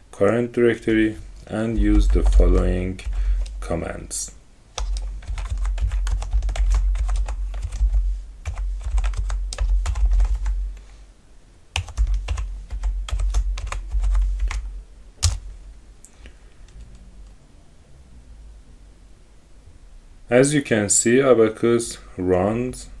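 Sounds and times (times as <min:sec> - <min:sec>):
computer keyboard typing: 0:01.8 - 0:03.6, 0:04.8 - 0:10.6, 0:11.8 - 0:15.4.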